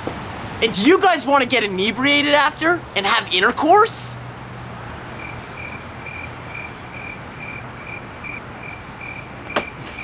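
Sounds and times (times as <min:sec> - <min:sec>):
cricket chirping: 0:04.4 - 0:10.0.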